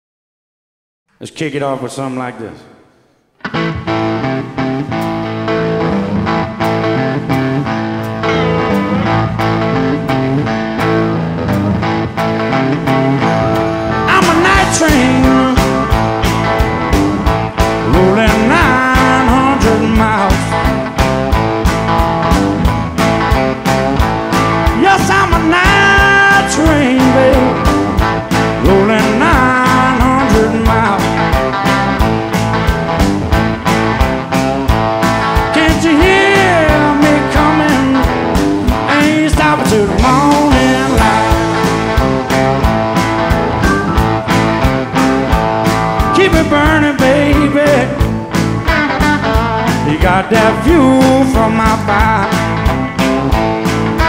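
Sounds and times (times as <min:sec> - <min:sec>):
bent electric guitar notes: 0:02.5 - 0:54.0
blues band playing: 0:03.1 - 0:54.0.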